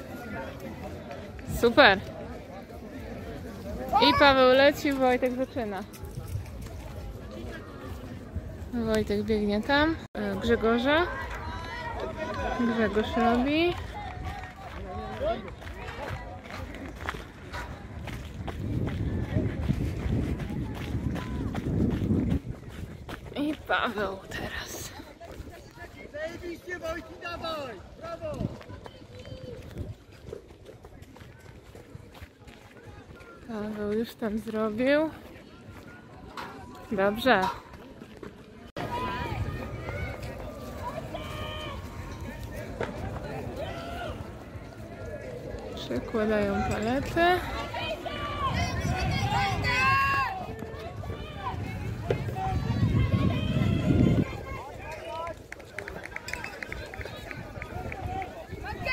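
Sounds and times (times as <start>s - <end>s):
indistinct voices outdoors: 0.0s - 58.9s.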